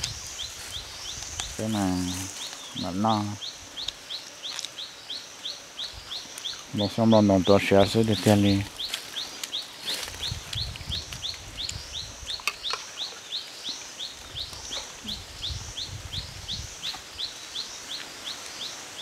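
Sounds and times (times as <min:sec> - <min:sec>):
bird chirping: 0:00.0 - 0:19.0.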